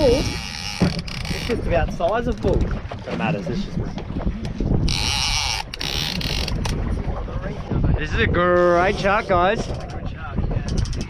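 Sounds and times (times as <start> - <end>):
choppy water around boat: 0.0 - 11.0
wind on microphone: 0.0 - 11.0.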